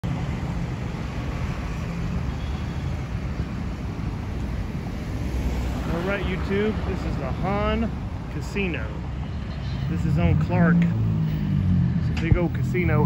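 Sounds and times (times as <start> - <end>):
cars passing on street: 0.0 - 13.0.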